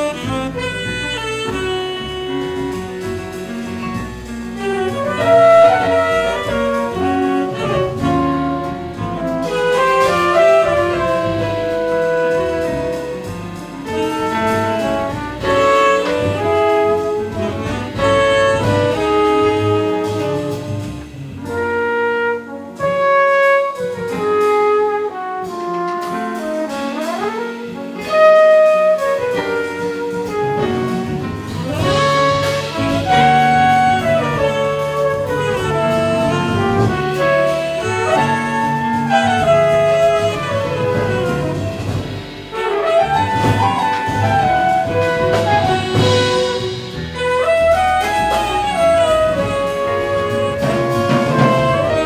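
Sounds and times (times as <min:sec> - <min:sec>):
double bass: 0:00.0 - 0:52.0
drum kit: 0:00.0 - 0:52.0
grand piano: 0:00.0 - 0:52.0
saxophone: 0:00.0 - 0:52.0
trumpet: 0:00.0 - 0:52.0.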